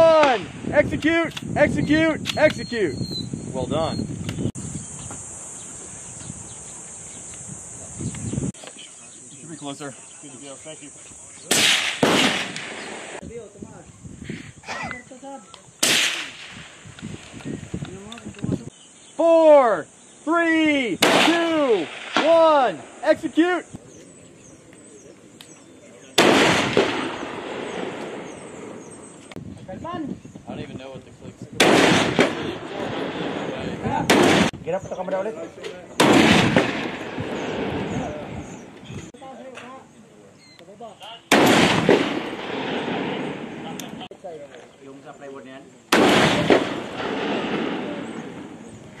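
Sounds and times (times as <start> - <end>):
rifle shot with echo: 11.5 - 13.2, 15.8 - 16.8, 21.0 - 22.8, 26.2 - 28.9, 31.6 - 34.6, 36.0 - 38.2, 41.3 - 44.0, 45.9 - 48.7.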